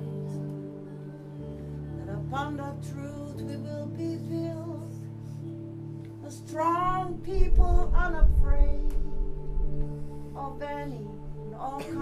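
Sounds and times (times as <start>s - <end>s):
sustained keyboard chords: 0.0s - 12.0s
low beats: 5.5s - 12.0s
woman singing: 10.4s - 12.0s.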